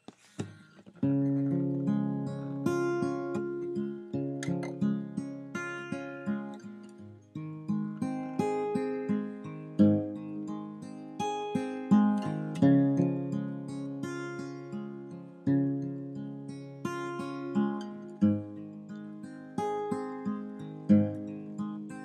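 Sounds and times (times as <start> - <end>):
acoustic guitar playing: 0.0 - 22.0.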